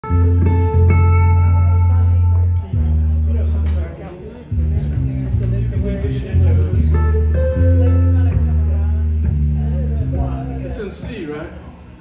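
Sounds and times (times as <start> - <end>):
electric guitar held notes: 0.0 - 3.3, 6.3 - 10.2
bass guitar notes: 0.0 - 3.8, 4.5 - 10.8.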